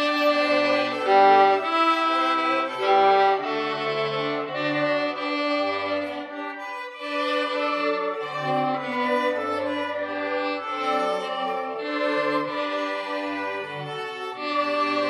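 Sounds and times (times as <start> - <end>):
string ensemble playing: 0.0 - 15.0.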